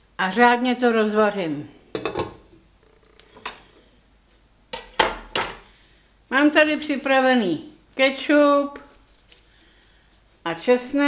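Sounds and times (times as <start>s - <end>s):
kitchenware clattering: 2.0s - 2.6s.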